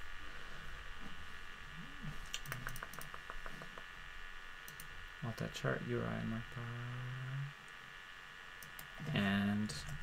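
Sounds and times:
low steady hum: 0.0 - 10.0
computer keyboard typing: 2.4 - 3.7.

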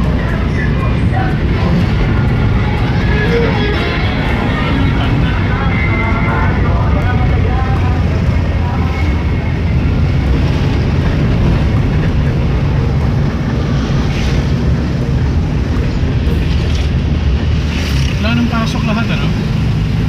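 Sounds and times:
car engine rumble: 0.0 - 20.0
road noise: 0.0 - 20.0.

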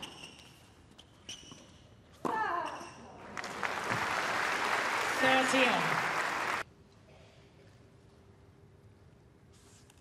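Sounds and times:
tennis shoes squeaking: 0.0 - 3.1.

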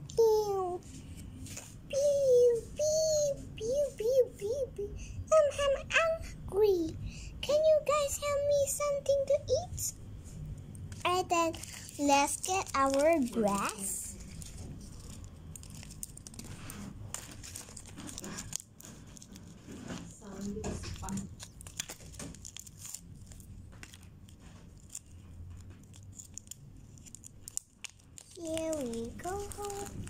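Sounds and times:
paper wrapper crinkling and tearing: 10.8 - 30.0.

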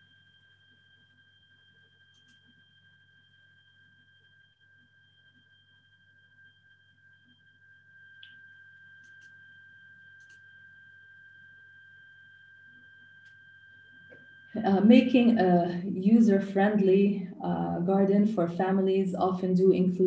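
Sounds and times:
high-pitched electronic whine: 0.0 - 15.8
faint clicks: 9.0 - 9.4, 10.2 - 10.4
low hum: 13.1 - 20.0.

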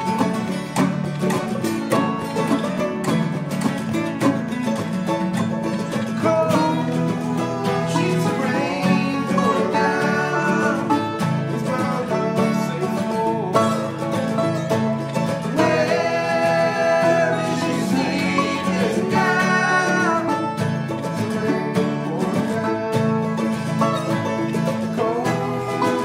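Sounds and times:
banjo picking: 0.0 - 26.0
mandolin: 0.0 - 26.0
strummed acoustic guitars: 0.0 - 26.0.

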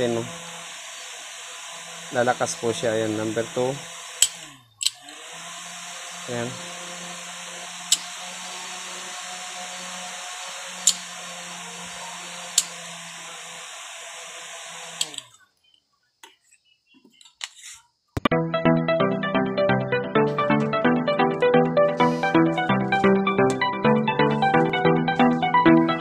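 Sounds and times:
electric fan motor hum: 0.0 - 15.3, 20.4 - 26.0
sharp clicks: 7.9 - 8.1, 10.8 - 11.1
electronic music: 18.2 - 26.0.

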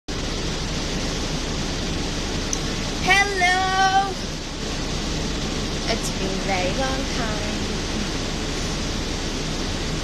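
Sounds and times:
rushing hiss: 0.1 - 10.0.

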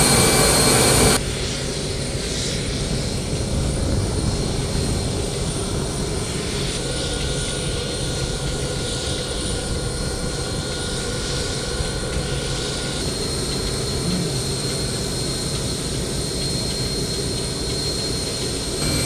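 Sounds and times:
jet engines rumbling: 0.0 - 19.0.

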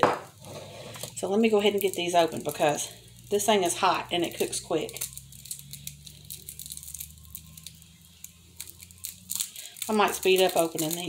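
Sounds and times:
candy wrapper crinkling: 0.8 - 11.0.

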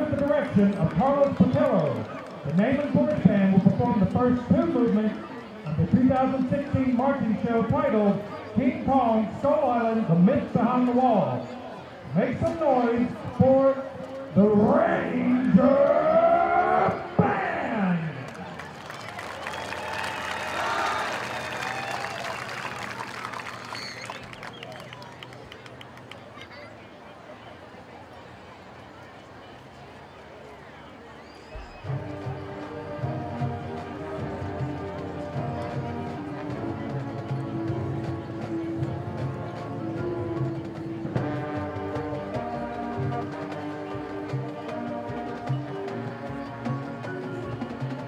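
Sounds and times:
crowd noise: 0.0 - 48.0
drumline percussion: 18.6 - 25.4, 31.6 - 48.0
brass holding sustained chords: 38.8 - 46.6.

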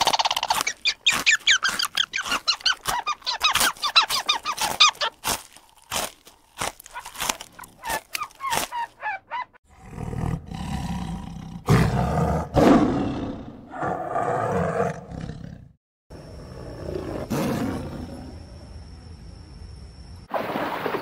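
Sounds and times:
squeaky squirrel chirps: 0.0 - 5.2
tiger roaring and growling: 9.7 - 15.7, 16.4 - 18.4.

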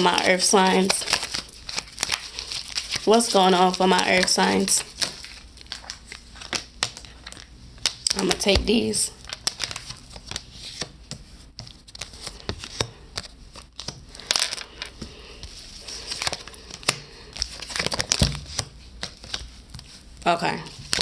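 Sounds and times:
cards rustling: 0.0 - 21.0.

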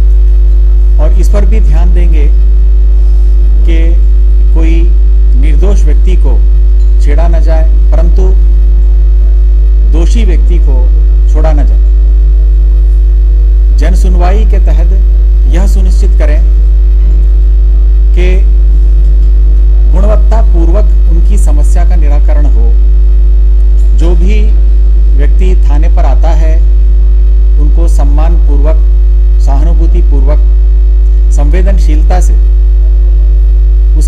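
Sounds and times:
electrical mains hum: 0.0 - 34.0
man speaking: 1.0 - 2.4, 3.6 - 8.4, 9.9 - 11.8, 13.8 - 17.2, 18.1 - 18.6, 19.9 - 22.8, 23.9 - 26.7, 27.6 - 30.5, 31.3 - 32.5
man's voice: 1.0 - 2.4, 3.6 - 6.4, 7.0 - 8.4, 9.9 - 11.8, 13.8 - 16.7, 18.1 - 18.6, 19.9 - 22.8, 23.9 - 26.7, 27.6 - 30.5, 31.3 - 32.5.

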